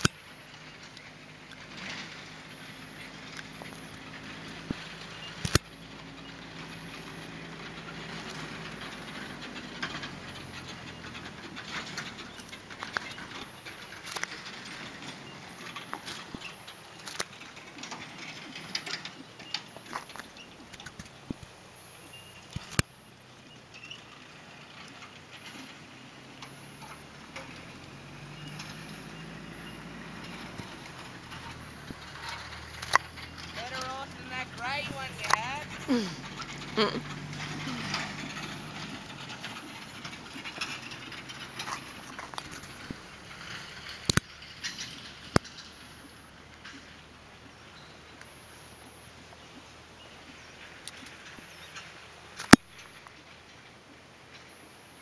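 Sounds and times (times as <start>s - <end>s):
outdoor background noise: 0.0s - 55.0s
sharp clicks: 4.7s - 5.7s, 32.7s - 33.6s.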